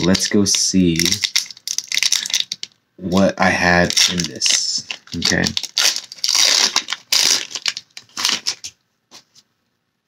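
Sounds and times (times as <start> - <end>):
foil pack crinkling: 0.0 - 2.7, 3.6 - 8.8.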